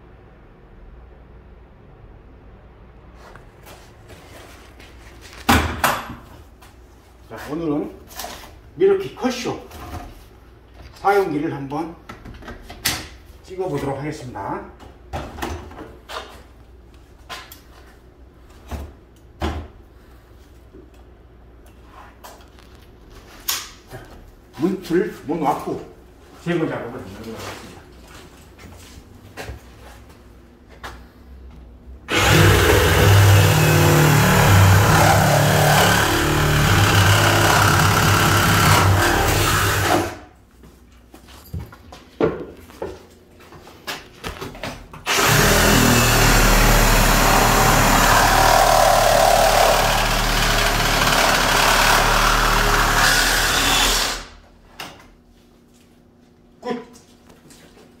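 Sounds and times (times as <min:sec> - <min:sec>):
reciprocating saw cutting wood: 0:32.1 - 0:40.2, 0:45.1 - 0:54.3.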